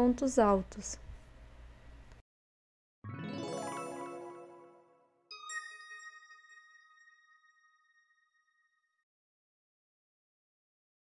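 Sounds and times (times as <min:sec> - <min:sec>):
bell-like chime ringing: 0:03.1 - 0:08.9.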